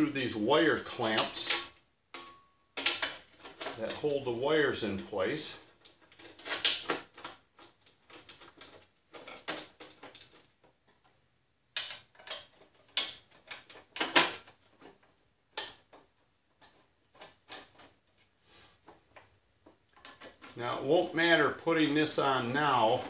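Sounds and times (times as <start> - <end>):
metallic clicks and knocks: 1.0 - 4.0, 5.6 - 18.3, 18.9 - 20.6.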